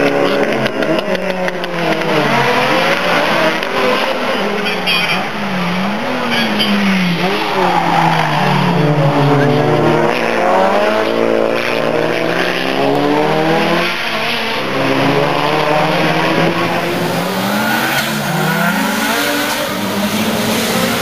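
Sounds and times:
race car engine revving: 0.0s - 21.0s
tyre squeal: 6.2s - 8.7s.

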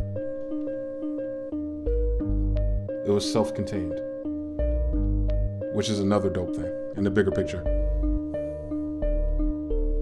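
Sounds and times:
repeating synth melody: 0.0s - 10.0s.

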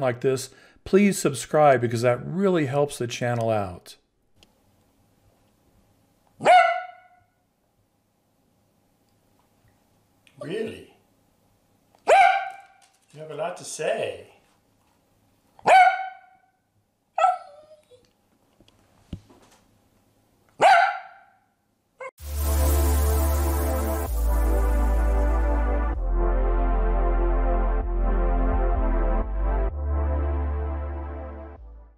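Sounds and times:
dog barking: 6.4s - 7.3s, 12.0s - 12.8s, 15.6s - 16.5s, 17.2s - 17.6s, 20.6s - 21.4s.

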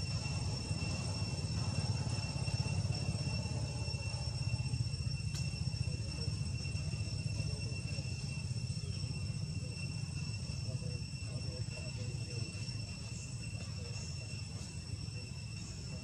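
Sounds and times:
insect drone: 0.0s - 16.0s.

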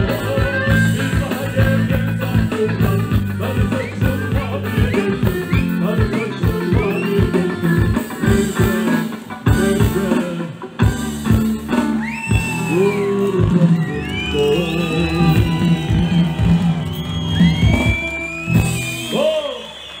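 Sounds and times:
live band music over pa: 0.0s - 20.0s
crowd shouting and whooping: 11.7s - 20.0s.

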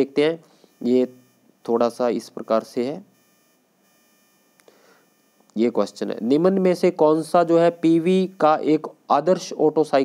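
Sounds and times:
faint electronic whine: 0.0s - 10.0s.

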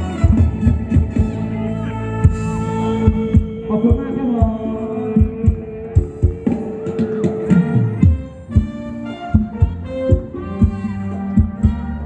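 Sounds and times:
heavy kick drum beat: 0.0s - 1.4s, 2.2s - 12.0s
bass line: 0.0s - 12.0s
live dance band: 0.0s - 12.0s.

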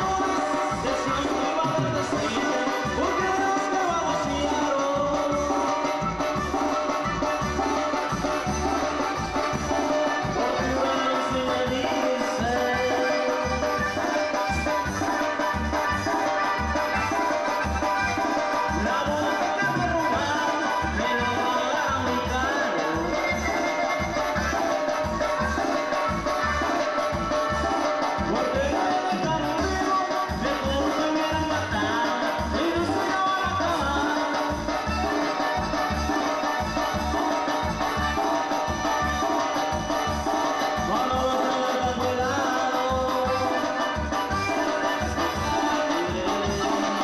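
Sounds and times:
band playing latin dance music: 0.0s - 47.0s.

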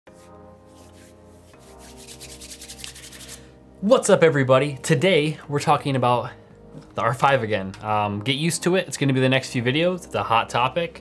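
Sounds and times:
hands rubbing together: 0.1s - 3.5s
soft sustained music chord: 0.2s - 8.9s.

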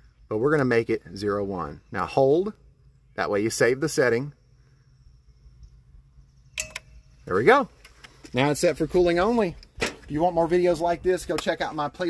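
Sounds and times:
low steady hum: 0.0s - 12.0s
brief tone: 6.2s - 7.2s.

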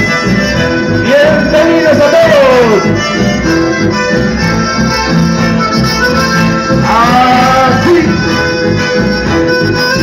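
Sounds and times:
button accordion playing chords: 0.0s - 10.0s
pulsing low accompaniment: 0.0s - 10.0s.

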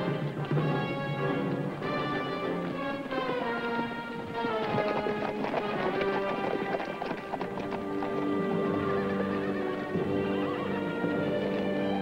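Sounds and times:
horses galloping hoofbeats: 0.0s - 12.0s
orchestral film score: 0.0s - 12.0s.

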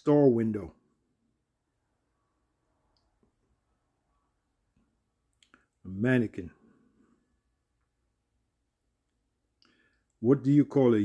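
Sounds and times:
man's voice: 10.2s - 11.0s.

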